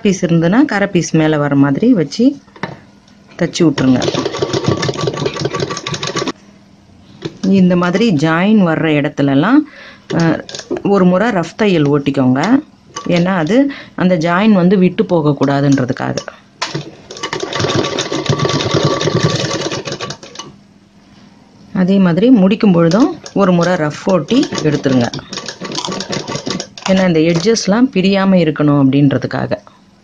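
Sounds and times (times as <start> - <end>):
sewing machine running: 3.9 - 6.4, 16.6 - 20.5, 22.8 - 27.4.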